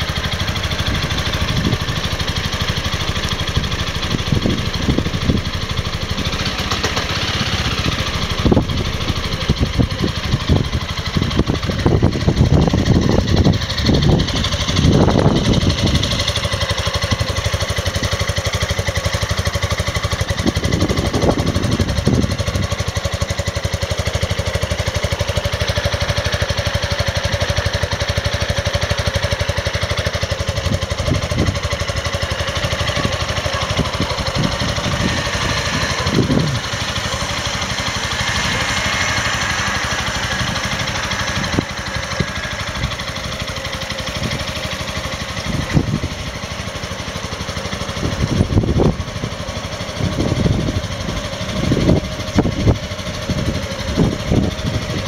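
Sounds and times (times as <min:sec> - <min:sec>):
scooter engine idling: 0:00.0 - 0:55.0.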